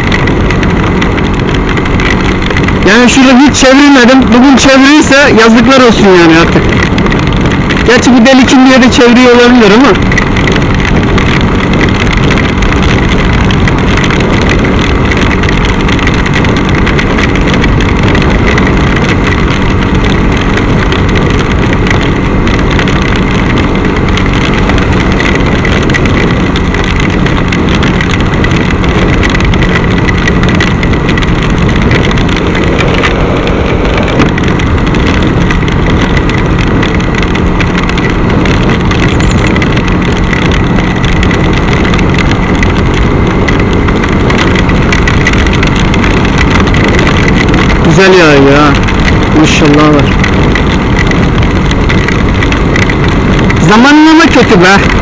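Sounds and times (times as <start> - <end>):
motorcycle engine running: 0.0 - 55.0
wet road rush: 0.0 - 55.0
wind noise: 0.0 - 55.0.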